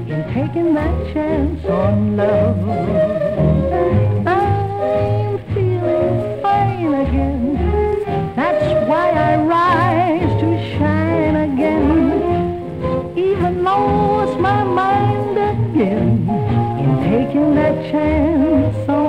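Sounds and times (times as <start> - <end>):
swing jazz band playing: 0.0 - 19.0.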